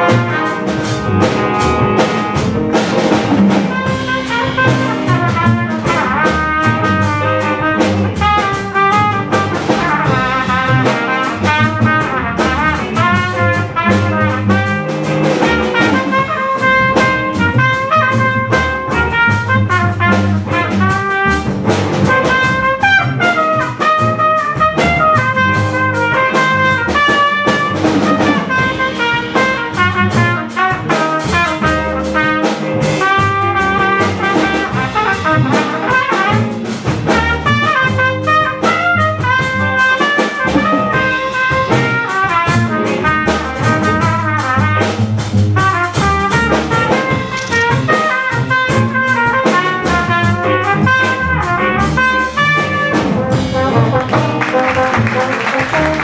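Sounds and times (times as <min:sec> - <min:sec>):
saxophone: 0:00.0 - 0:44.6, 0:45.6 - 0:56.0
bass: 0:00.0 - 0:56.0
drum kit: 0:00.0 - 0:56.0
guitar: 0:00.0 - 0:56.0
trombone: 0:00.0 - 0:56.0
trumpet: 0:00.0 - 0:56.0.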